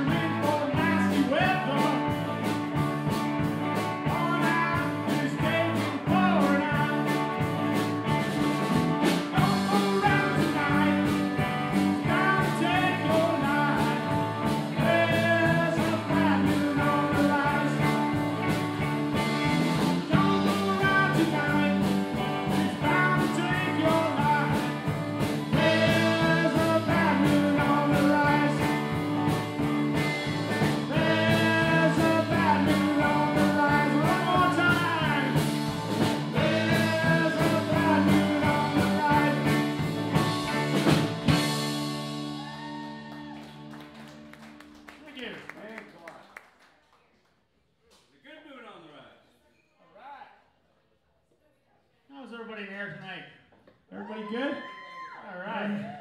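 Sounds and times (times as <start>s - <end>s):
man singing: 0.0s - 2.6s, 3.8s - 7.5s, 9.2s - 18.6s, 19.7s - 40.9s
steady drum beat: 0.0s - 42.3s
electric guitars: 0.0s - 44.8s
bass guitar: 0.0s - 45.0s.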